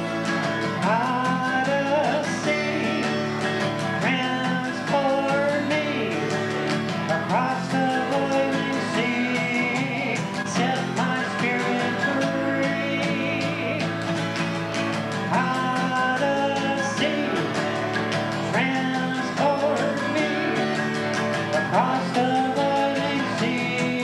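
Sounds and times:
acoustic guitar strumming: 0:00.0 - 0:24.0.

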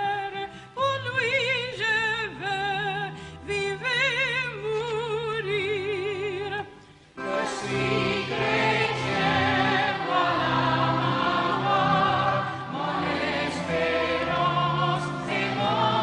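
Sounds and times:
group singing a hymn: 0:07.2 - 0:16.0.

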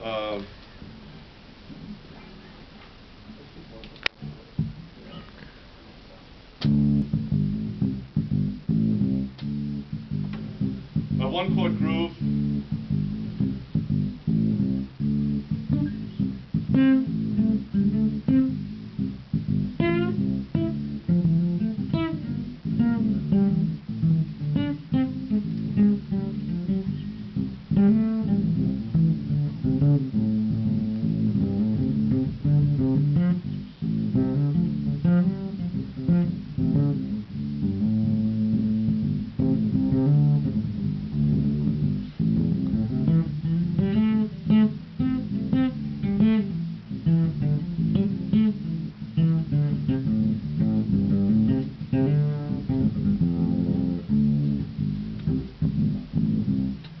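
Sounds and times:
electric bass guitar plucking: 0:04.0 - 0:05.5, 0:06.6 - 0:57.0.

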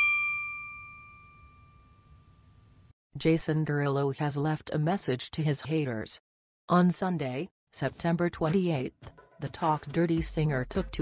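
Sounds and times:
bright metallic chime ringing: 0:00.0 - 0:02.6.

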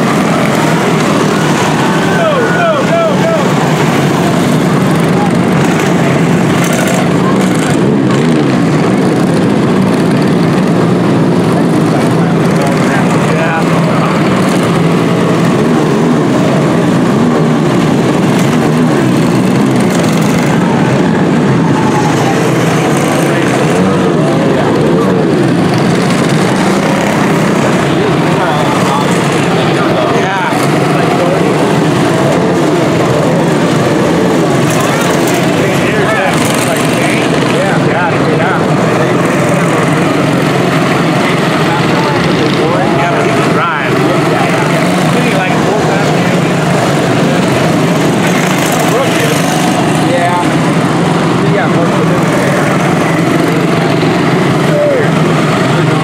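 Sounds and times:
small race car engines: 0:00.0 - 0:56.0.

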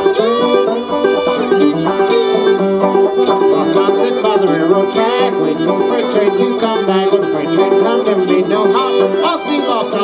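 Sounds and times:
bowed fiddle melody: 0:00.0 - 0:10.0
picked banjo notes: 0:00.0 - 0:10.0.

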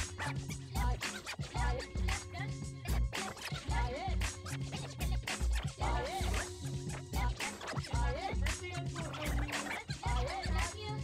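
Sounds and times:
hip-hop beat with heavy bass: 0:00.0 - 0:11.0
vinyl record scratching: 0:00.0 - 0:11.0.

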